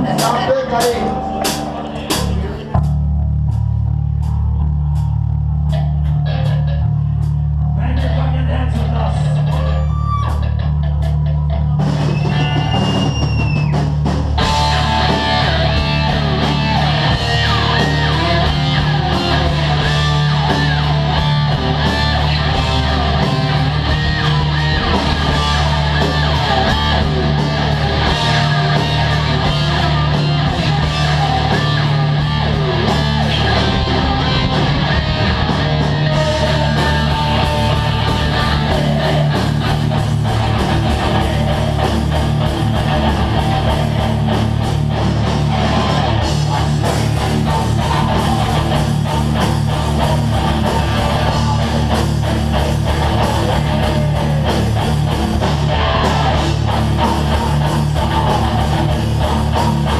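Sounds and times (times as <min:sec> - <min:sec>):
drum hits: 0:00.0 - 0:06.6
heavy metal band playing live: 0:00.0 - 0:59.9.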